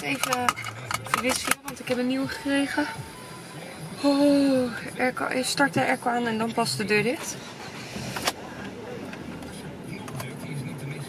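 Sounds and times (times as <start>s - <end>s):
car engine running: 0.0s - 11.0s
car air conditioning blowing: 0.8s - 11.0s.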